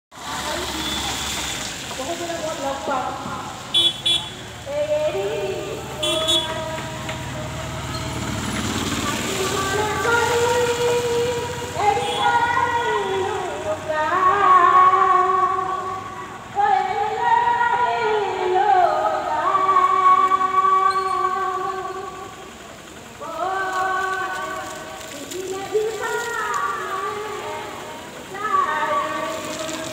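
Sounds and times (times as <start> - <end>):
car driving slowly past: 0.1 - 29.9
woman singing: 4.7 - 8.2, 8.9 - 22.4, 23.2 - 29.9.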